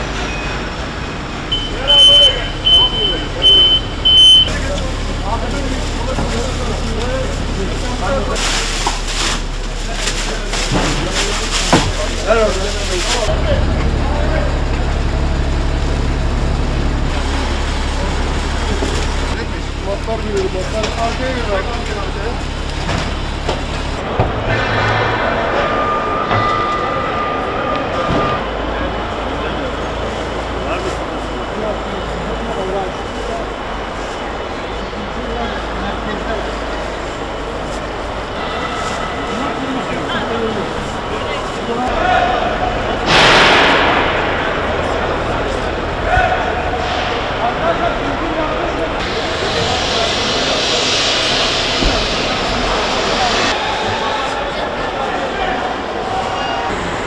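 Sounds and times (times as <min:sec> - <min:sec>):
crowd murmur in large hall: 0:00.0 - 0:57.0
indistinct chatter: 0:00.0 - 0:57.0
steady low rumble: 0:37.0 - 0:53.6.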